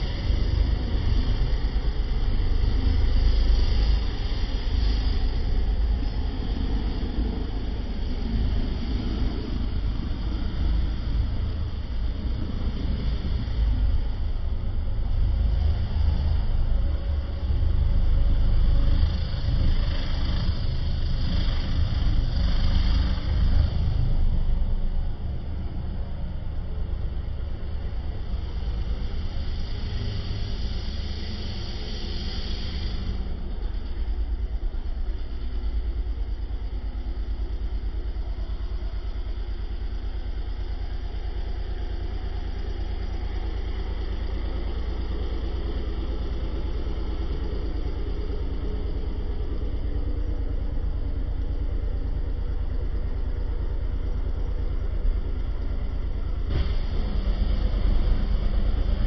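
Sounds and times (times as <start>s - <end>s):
engine rumbling: 0.0s - 59.0s
hiss: 0.0s - 59.0s.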